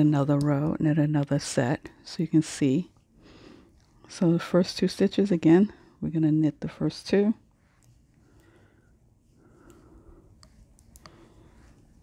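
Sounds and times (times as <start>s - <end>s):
knitting needles clicking: 10.4s - 11.3s.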